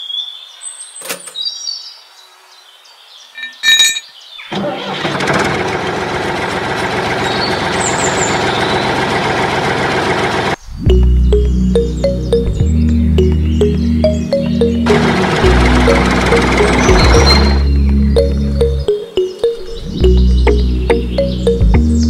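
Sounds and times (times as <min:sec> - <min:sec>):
toy tractor motor running: 0:14.8 - 0:17.6.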